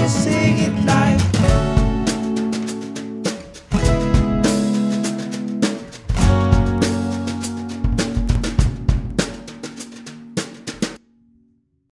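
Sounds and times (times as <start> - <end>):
drum kit playing: 0.0 - 11.0.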